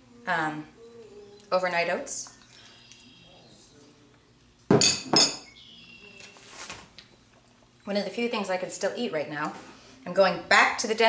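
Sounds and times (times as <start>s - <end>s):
spoon clinking against a dish: 4.8s - 5.5s.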